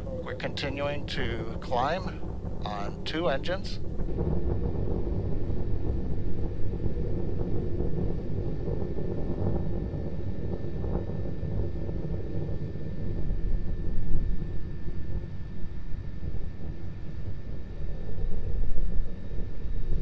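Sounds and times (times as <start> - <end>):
rocket engines rumbling: 0.0 - 11.4.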